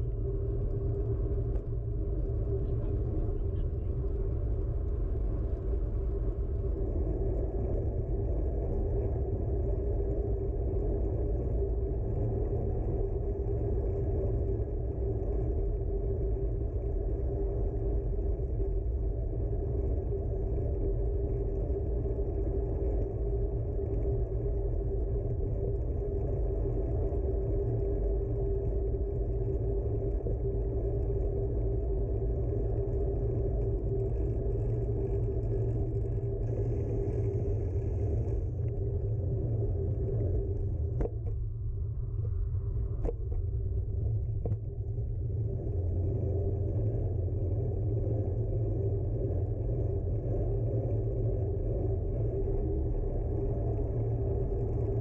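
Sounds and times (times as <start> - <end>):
bicycle road rumble on asphalt: 0.0 - 55.0
steady hum: 0.0 - 55.0.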